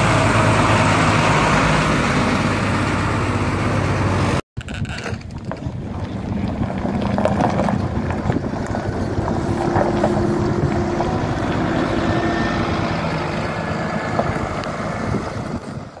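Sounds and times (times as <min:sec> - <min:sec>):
bus diesel engine driving off: 0:00.0 - 0:04.4, 0:05.7 - 0:16.0
wind on microphone: 0:04.6 - 0:16.0.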